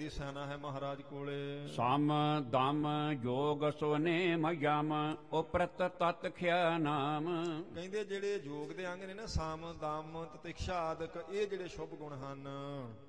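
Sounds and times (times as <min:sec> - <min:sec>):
man chanting: 0:00.0 - 0:13.0.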